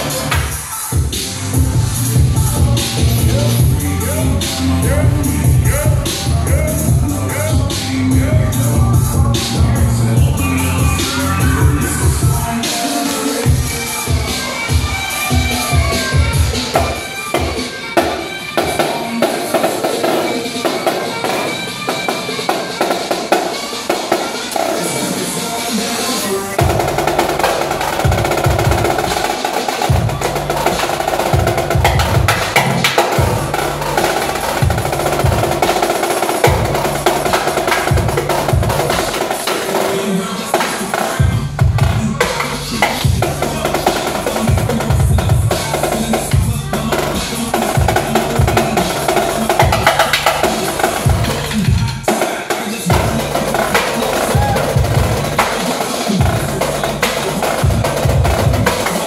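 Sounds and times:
deep pulsing bass line: 0:01.6 - 0:12.5, 0:41.2 - 0:43.7
marching snare drums: 0:26.6 - 0:59.0.

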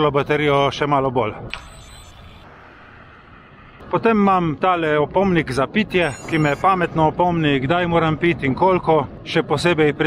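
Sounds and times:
wind: 0:00.0 - 0:10.0.

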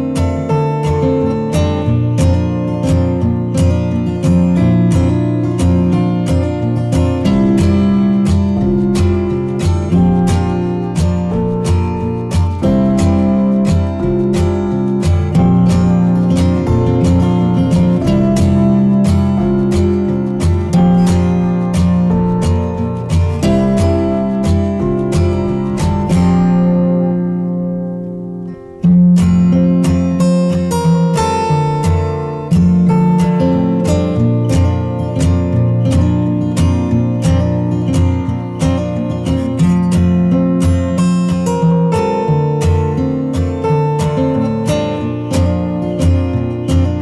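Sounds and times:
strummed acoustic guitar music: 0:00.0 - 0:47.0.

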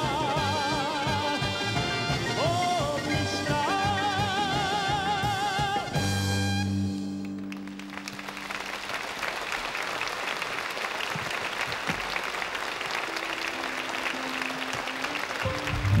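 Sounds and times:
audience applauding: 0:07.2 - 0:16.0.

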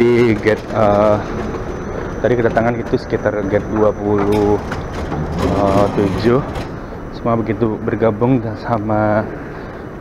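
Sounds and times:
man talking: 0:00.0 - 0:01.4, 0:02.2 - 0:04.8, 0:05.4 - 0:09.4
busy indoor hall noise: 0:00.0 - 0:08.2.

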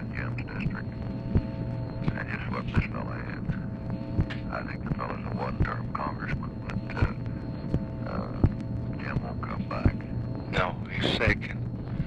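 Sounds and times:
muffled telephone speech: 0:00.0 - 0:00.9, 0:02.0 - 0:07.4, 0:08.0 - 0:11.6
steady hum: 0:00.0 - 0:12.0.

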